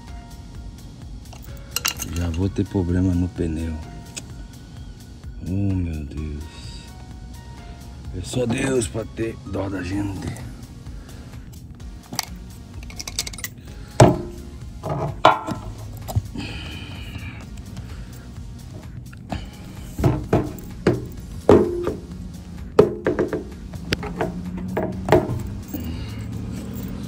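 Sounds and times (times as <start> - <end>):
background music: 0.0 - 27.0
tools clicking and scraping metal: 1.3 - 2.5, 11.5 - 13.6, 23.9 - 27.0.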